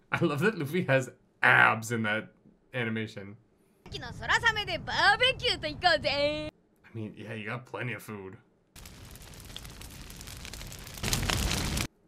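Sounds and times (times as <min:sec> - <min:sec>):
fire crackling: 0:08.7 - 0:12.0.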